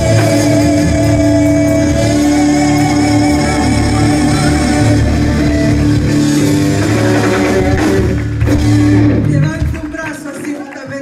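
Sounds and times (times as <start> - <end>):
live band playing upbeat music: 0.0 - 11.0.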